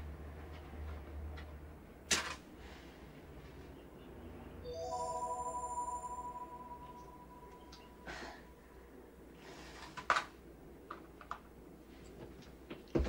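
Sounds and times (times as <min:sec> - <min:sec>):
soft sustained music notes: 0:04.6 - 0:08.8.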